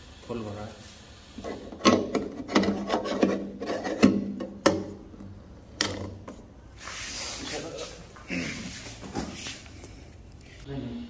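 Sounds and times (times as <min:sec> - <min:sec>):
metal cap grating scrapes: 0:01.4 - 0:04.4.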